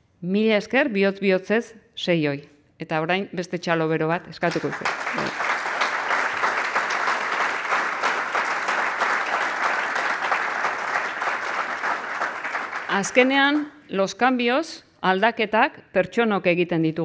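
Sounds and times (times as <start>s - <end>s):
audience applauding: 4.5s - 13.7s.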